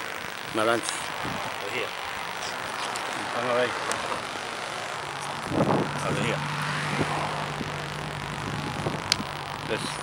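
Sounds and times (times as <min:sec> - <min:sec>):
traffic noise: 0:00.0 - 0:10.0
vehicle engine humming: 0:00.0 - 0:10.0.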